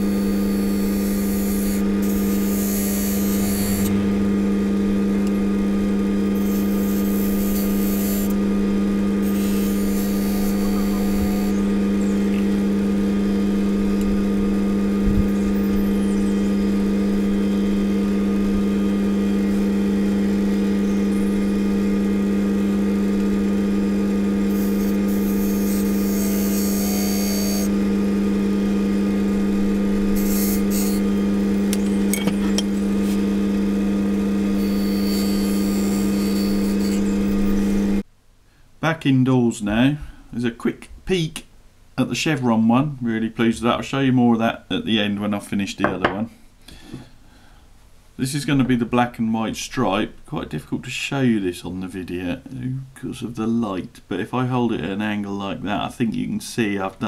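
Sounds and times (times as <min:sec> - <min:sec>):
lathe motor humming: 0:00.0 - 0:38.0.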